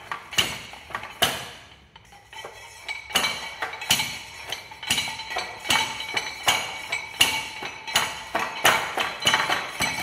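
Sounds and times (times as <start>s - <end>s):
steel rod pounding clay in metal tray: 2.4s - 10.0s.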